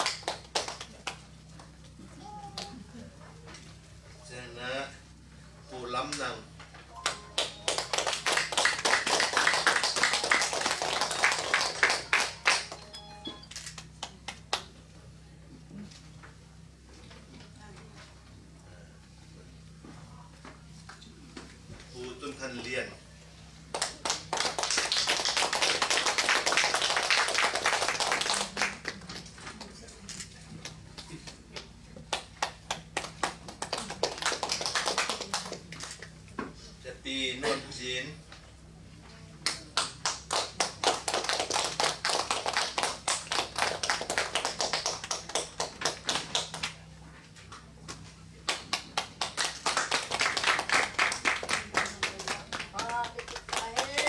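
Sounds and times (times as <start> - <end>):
audience clapping: 0.0 - 1.7, 7.0 - 14.7, 23.7 - 29.8, 30.6 - 35.7, 39.5 - 46.9, 48.4 - 54.0.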